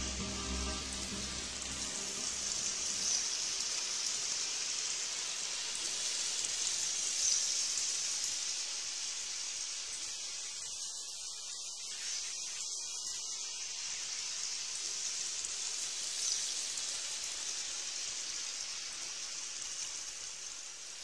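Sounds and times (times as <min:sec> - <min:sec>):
background music: 0:00.0 - 0:03.8
steady high hiss: 0:00.0 - 0:21.0.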